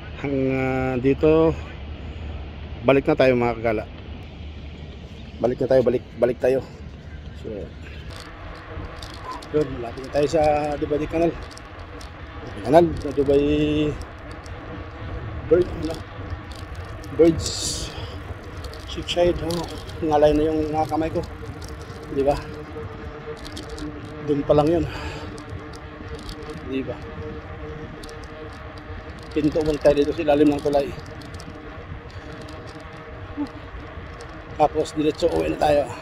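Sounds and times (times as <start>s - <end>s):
wind rumble on microphone: 0.0s - 36.0s
faint rattling: 4.9s - 36.0s
man speaking: 9.3s - 11.4s, 12.5s - 14.0s, 15.5s - 16.0s, 17.1s - 18.3s, 18.9s - 21.3s, 22.1s - 22.6s, 24.2s - 25.2s, 26.6s - 27.1s, 29.3s - 31.0s, 34.6s - 36.0s.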